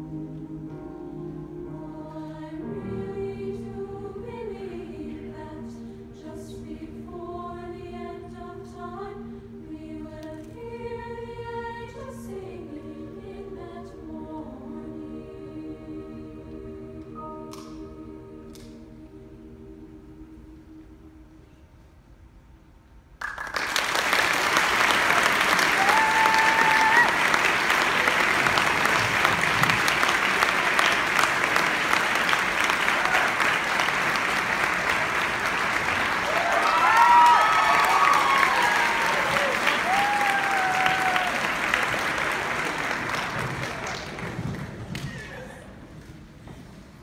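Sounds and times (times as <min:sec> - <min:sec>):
audience applause: 0:23.2 - 0:45.5
high cheering voices: 0:24.4 - 0:44.2.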